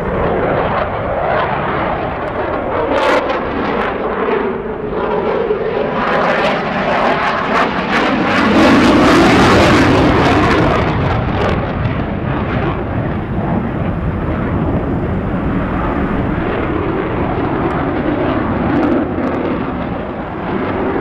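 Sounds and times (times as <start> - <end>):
jet flying overhead: 0.0 - 21.0.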